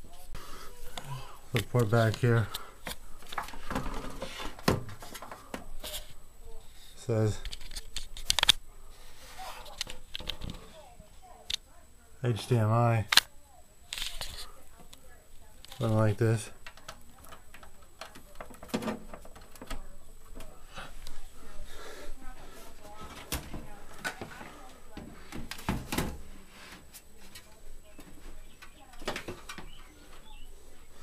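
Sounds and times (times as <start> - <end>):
equipment and cables handling noise: 0.0 - 11.7, 13.1 - 31.0.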